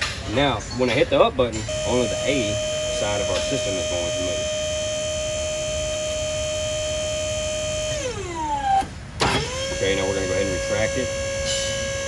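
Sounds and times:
hydraulic pump motor whine: 1.6s - 12.0s.

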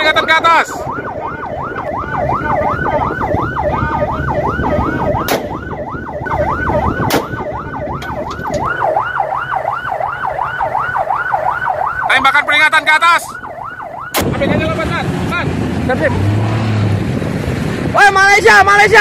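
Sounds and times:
siren yelping: 0.0s - 14.6s
rifle shots: 5.2s - 5.6s, 7.1s - 7.4s.

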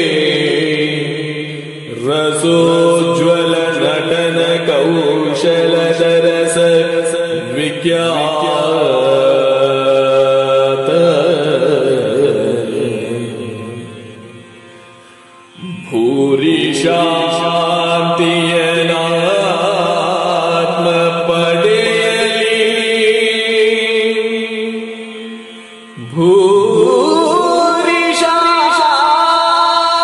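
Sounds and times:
man singing long wavering notes: 0.0s - 30.0s.

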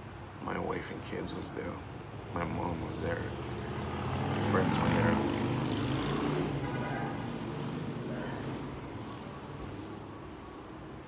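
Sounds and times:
low engine drone: 0.6s - 11.0s.

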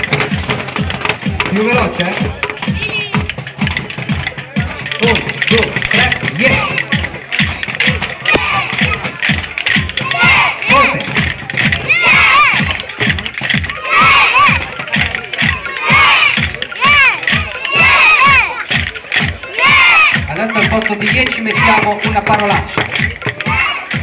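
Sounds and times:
sticks beating plastic barrels: 0.0s - 24.0s
children shouting together: 8.2s - 9.0s, 9.9s - 10.8s, 11.7s - 18.8s, 19.4s - 20.2s, 23.4s - 24.0s.

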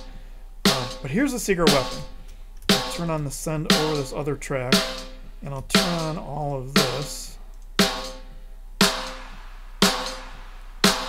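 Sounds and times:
reverb-drenched snare hits: 0.0s - 11.0s.

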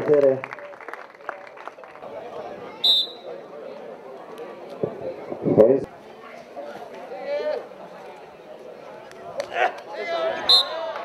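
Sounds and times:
spectators chattering: 0.0s - 11.0s
referee whistle blast: 2.8s - 3.3s, 10.4s - 10.8s.

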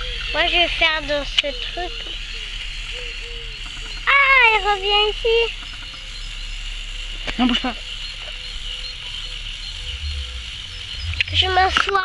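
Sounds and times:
toy electric motor whine: 0.0s - 12.0s
faint voices: 3.5s - 5.6s.

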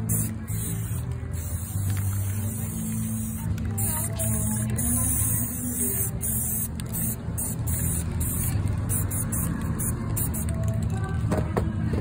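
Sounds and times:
spray paint can hissing: 0.0s - 11.1s.

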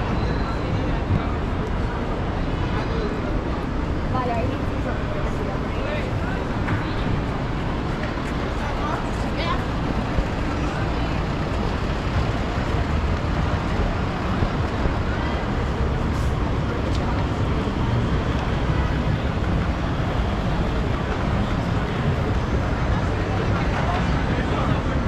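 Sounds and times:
crowd of people talking: 0.0s - 25.0s
traffic noise: 0.0s - 25.0s.

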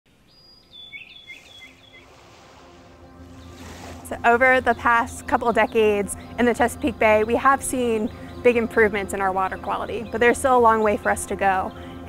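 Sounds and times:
faint outdoor ambience: 0.1s - 12.0s
bird whistle and chirps: 0.3s - 2.1s
low hum: 1.4s - 12.0s.

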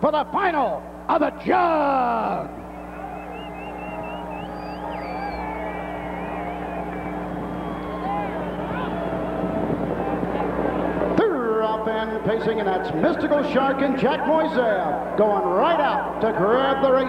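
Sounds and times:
steady hum: 0.0s - 17.0s
distant crowd voices: 2.1s - 17.0s
vehicle engine running: 2.5s - 16.6s.

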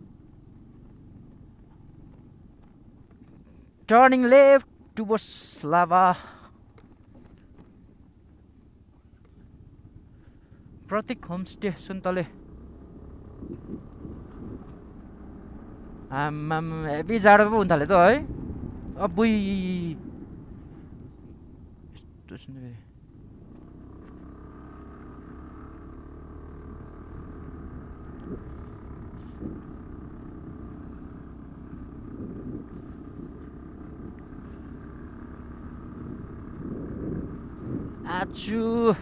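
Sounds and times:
faint scooter engines running: 0.0s - 39.0s.

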